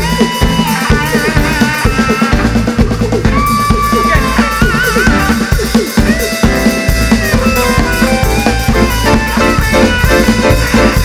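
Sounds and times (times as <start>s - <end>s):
live reggae band playing: 0.0s - 11.0s.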